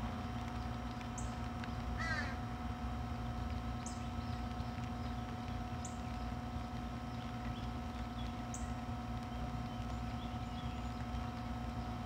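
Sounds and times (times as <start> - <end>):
crow-like bird caw: 2.0 - 2.4.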